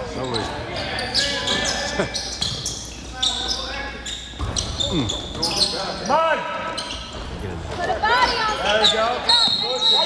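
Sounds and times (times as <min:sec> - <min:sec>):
sneakers squeaking on court floor: 0:00.0 - 0:10.0.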